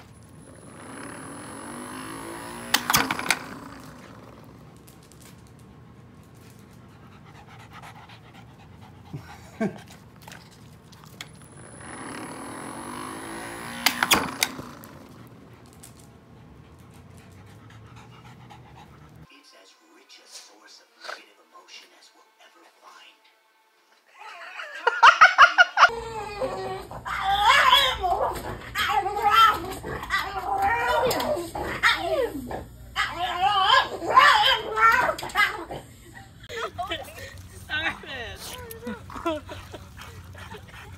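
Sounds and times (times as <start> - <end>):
dog whining yowls: 25.9 - 35.9.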